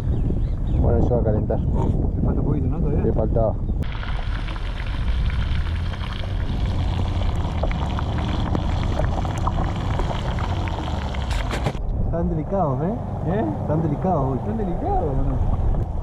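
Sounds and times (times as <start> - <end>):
wind rumble on microphone: 0.0 - 16.0
fish sizzling in oil: 3.8 - 11.5.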